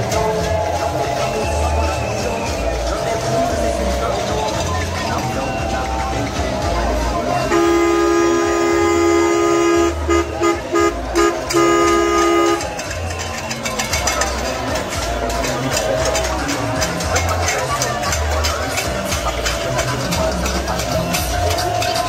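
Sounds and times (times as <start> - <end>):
music with thumping beat: 0.0 - 22.0
voices: 0.0 - 22.0
vehicle horn honking: 7.4 - 13.6.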